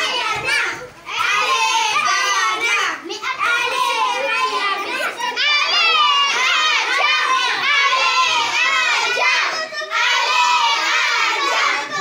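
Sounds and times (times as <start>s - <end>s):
children shouting and cheering: 0.0s - 12.0s.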